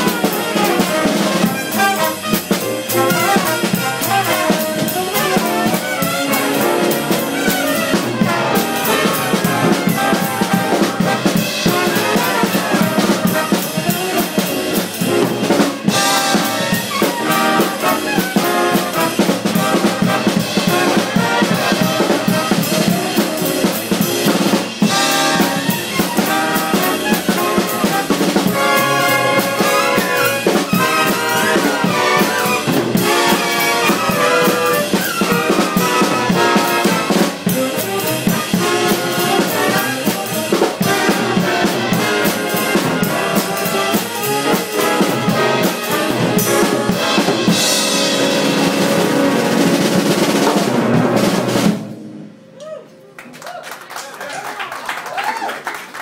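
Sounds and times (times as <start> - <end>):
big band playing: 0.0 - 53.0.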